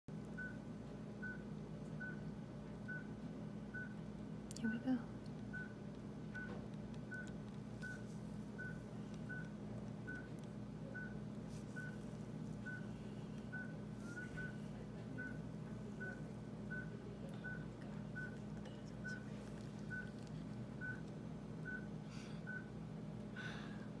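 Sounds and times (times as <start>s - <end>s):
low equipment hum: 0.1s - 24.0s
monitor beeping: 0.3s - 4.1s, 5.4s - 22.8s.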